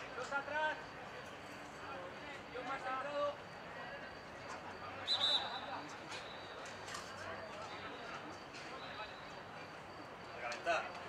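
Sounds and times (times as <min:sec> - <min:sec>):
referee whistle: 0:05.0 - 0:06.6.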